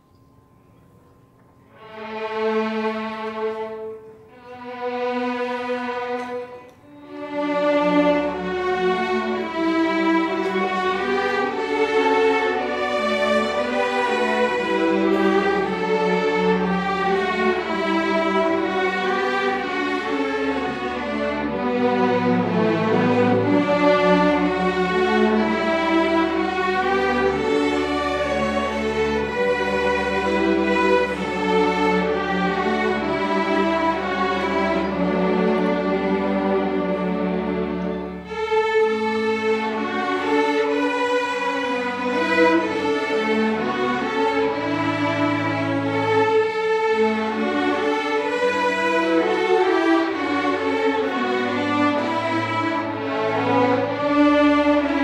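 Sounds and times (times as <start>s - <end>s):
string orchestra playing ballad: 0.0s - 55.0s.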